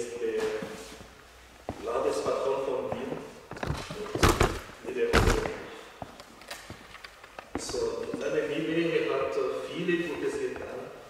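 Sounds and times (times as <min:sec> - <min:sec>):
person speaking: 0:00.0 - 0:06.2, 0:07.4 - 0:11.0
heavy thumps: 0:03.0 - 0:06.9.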